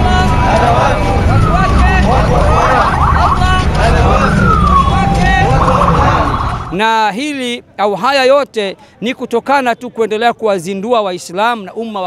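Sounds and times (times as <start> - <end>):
many voices calling out: 0.0 - 6.8
motor traffic rumble: 0.0 - 6.9
falling wails: 0.5 - 6.8.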